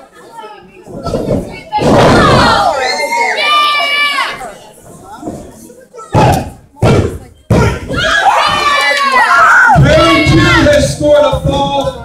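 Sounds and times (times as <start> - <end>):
crowd shouting and cheering: 1.0 - 4.8, 6.0 - 12.0.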